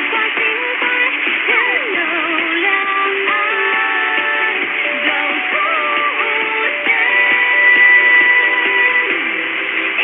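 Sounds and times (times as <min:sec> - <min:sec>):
radio reception hiss: 0:00.0 - 0:10.0
thin music from radio: 0:00.0 - 0:10.0.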